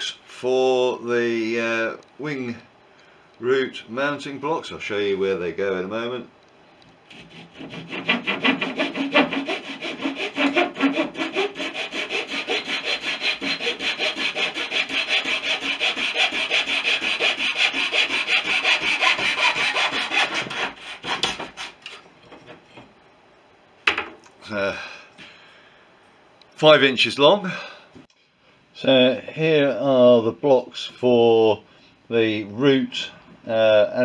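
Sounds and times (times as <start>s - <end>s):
hand saw cutting wood: 7.1s - 22.0s.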